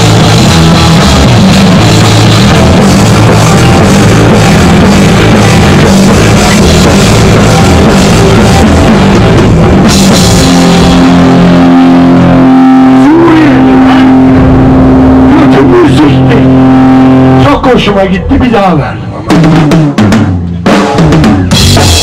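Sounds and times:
punk rock band playing: 0:00.0 - 0:22.0
man shouting vocals: 0:12.8 - 0:14.4, 0:15.2 - 0:16.7.

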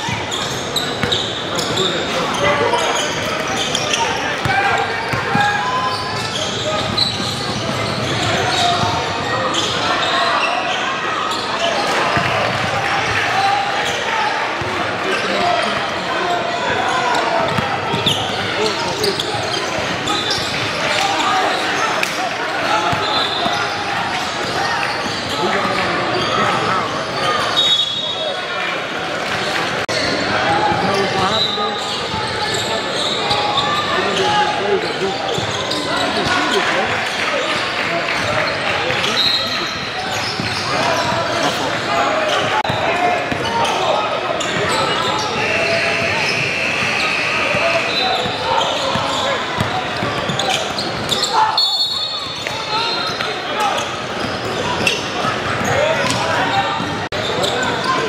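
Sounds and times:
sneakers squeaking: 0:00.0 - 0:28.6, 0:29.2 - 0:58.0
hubbub of people talking: 0:00.0 - 0:58.0.

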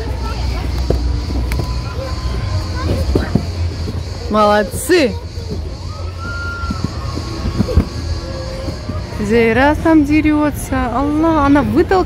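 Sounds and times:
children calling out: 0:01.5 - 0:03.7, 0:05.0 - 0:09.2.

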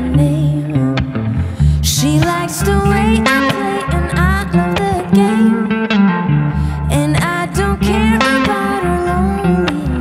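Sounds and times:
electric guitar through amplifier: 0:00.0 - 0:10.0.

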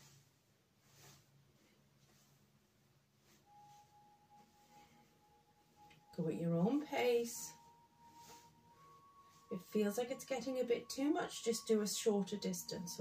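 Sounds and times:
faint low hum: 0:00.0 - 0:13.0
faint steady high tone: 0:03.2 - 0:13.0.

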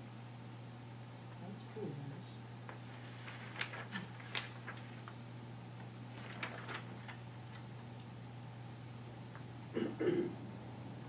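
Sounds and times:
paper pages rustling: 0:02.7 - 0:05.2, 0:05.8 - 0:07.9.

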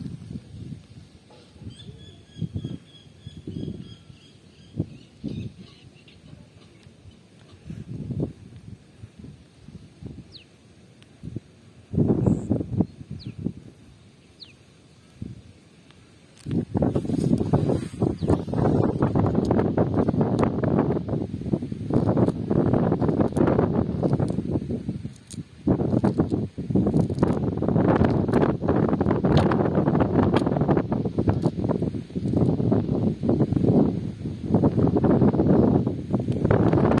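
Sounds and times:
wind buffeting microphone: 0:00.0 - 0:10.4, 0:11.2 - 0:14.5, 0:16.3 - 0:37.0.

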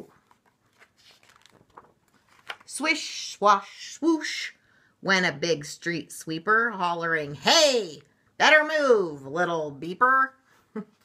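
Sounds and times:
paper page turning: 0:00.0 - 0:02.8.

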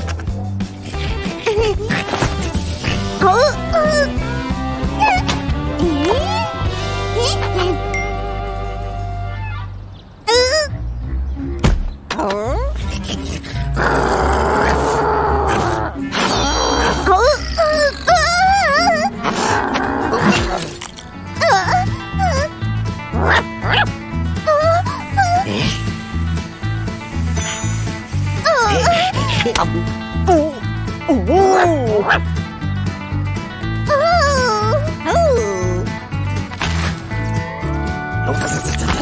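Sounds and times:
background music: 0:00.0 - 0:39.0.

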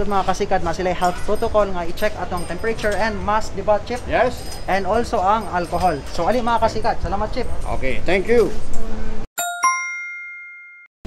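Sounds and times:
bell-like ding: 0:09.4 - 0:10.9.

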